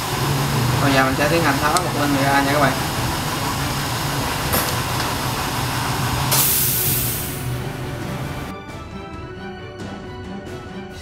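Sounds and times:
sharp hiss: 0.0s - 8.5s
background music: 6.3s - 11.0s.

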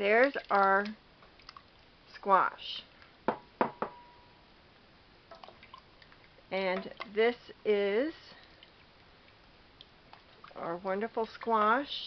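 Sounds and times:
spoon knocking on metal pot: 3.3s - 4.2s
brief metallic ringing: 3.9s - 4.4s.

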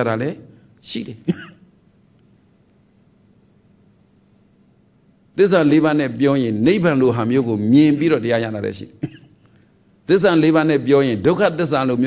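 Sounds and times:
faint steady hiss: 0.0s - 12.0s
man clearing his throat: 1.2s - 1.7s, 9.0s - 9.4s.

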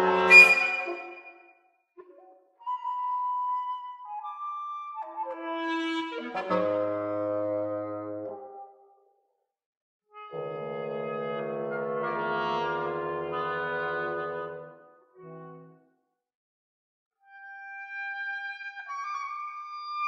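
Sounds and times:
woodwind quintet playing: 0.0s - 1.4s, 5.0s - 8.4s, 10.3s - 14.6s.

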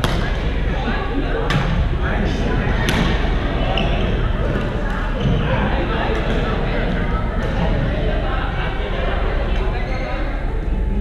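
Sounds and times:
hum of voices: 0.0s - 11.0s.

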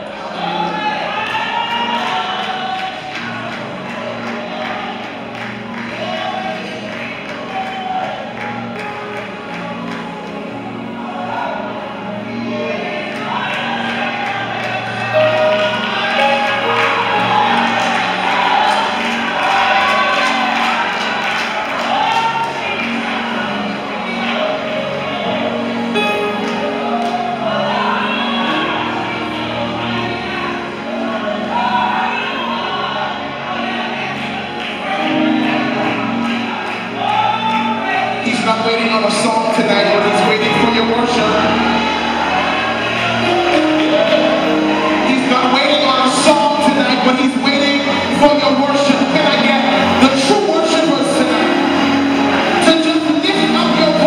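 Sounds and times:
congregation singing along: 0.0s - 54.0s
live band playing: 15.0s - 19.7s, 25.6s - 27.4s.

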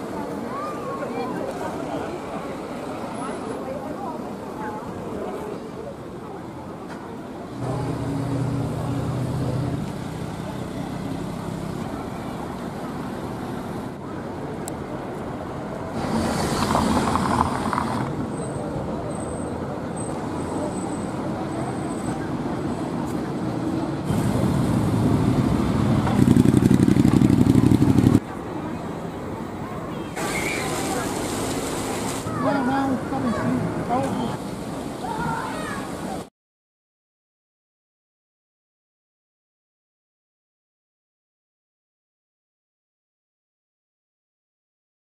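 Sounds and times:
passers-by talking: 0.0s - 36.3s
engine hum: 7.5s - 19.0s, 21.3s - 28.8s
motor vehicles passing: 7.5s - 35.8s.

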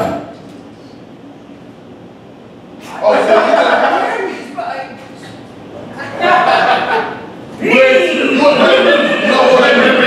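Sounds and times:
voices: 2.8s - 10.0s
people laughing: 2.9s - 4.6s, 5.8s - 10.0s.

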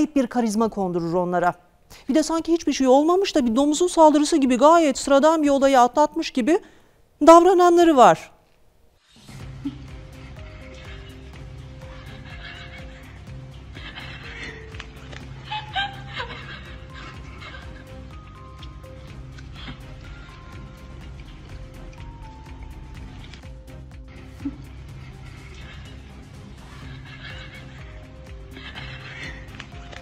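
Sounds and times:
background music: 0.0s - 30.0s
animal crying: 9.4s - 21.0s, 24.2s - 30.0s.

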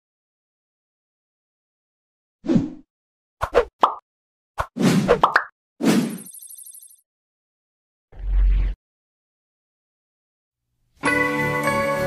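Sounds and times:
short pops and swishes: 4.6s - 6.3s.

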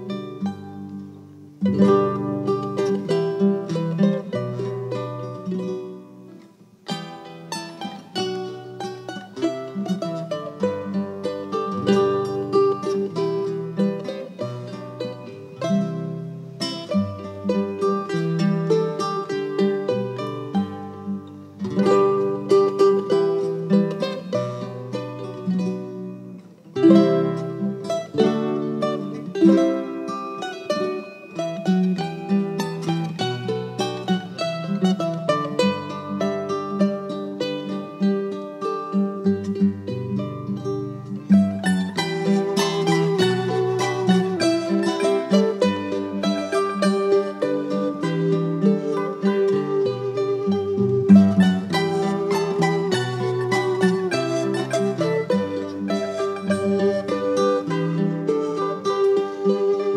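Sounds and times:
folk music on plucked strings: 0.0s - 59.9s.

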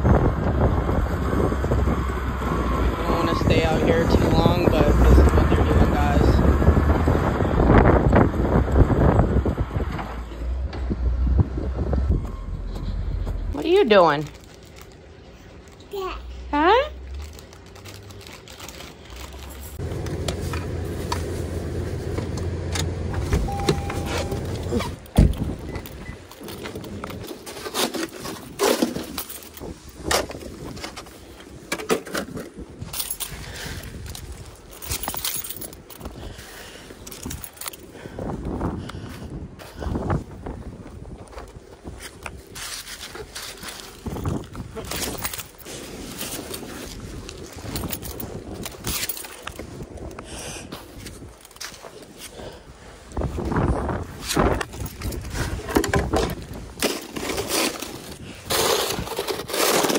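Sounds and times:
car cabin hum: 19.8s - 24.7s
car door shutting: 22.7s - 25.8s
crunches and scrapes in snow: 39.1s - 59.9s.

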